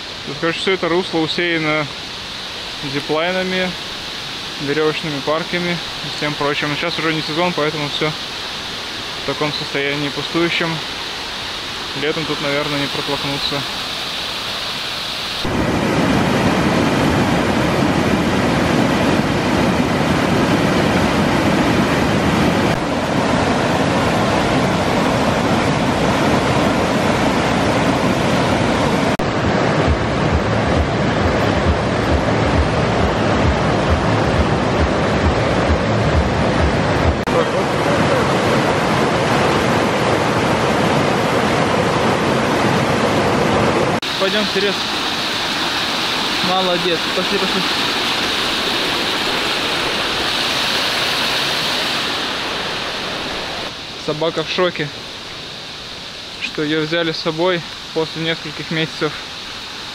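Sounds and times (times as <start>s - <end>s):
river rushing over rocks: 0.0s - 59.9s
low thuds: 29.2s - 37.3s.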